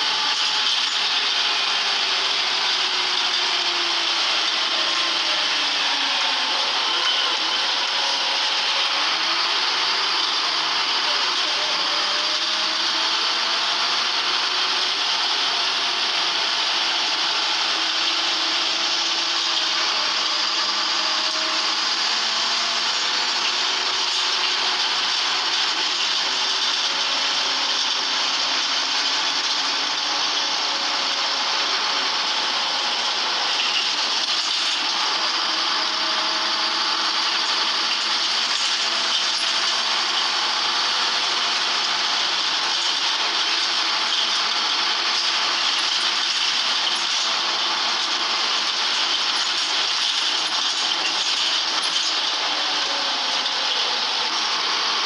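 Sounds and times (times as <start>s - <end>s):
bus engine and road drone: 0.0s - 55.0s.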